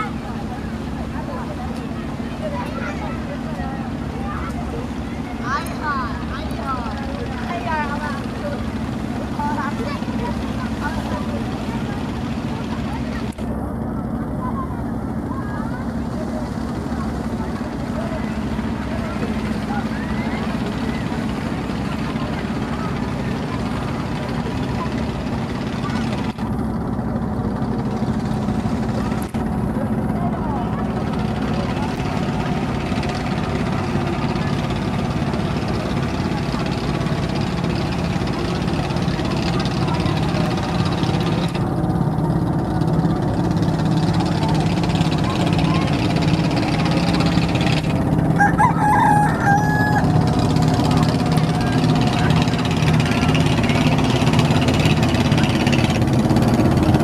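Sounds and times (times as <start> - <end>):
boat engine drone: 0.0 - 57.0.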